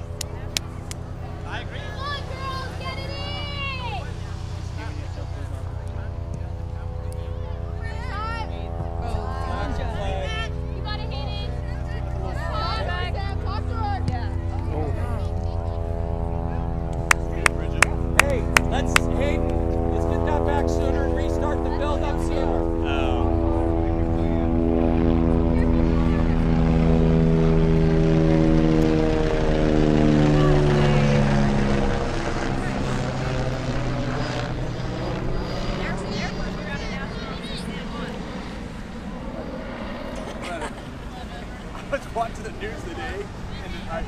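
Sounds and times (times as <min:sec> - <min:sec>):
propeller airplane flying past: 0:00.0 - 0:44.0.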